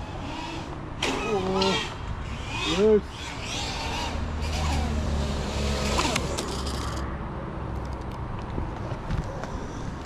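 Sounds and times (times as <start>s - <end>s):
low motor hum: 0.0s - 7.0s.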